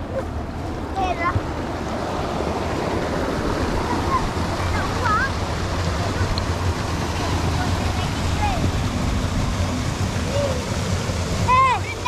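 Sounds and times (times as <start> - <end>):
water rushing over weir: 0.0 - 12.0.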